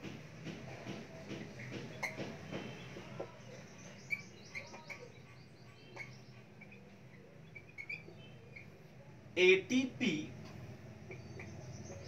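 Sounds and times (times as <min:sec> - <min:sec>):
marker squeaking on whiteboard: 0:00.7 - 0:02.9, 0:04.1 - 0:08.9.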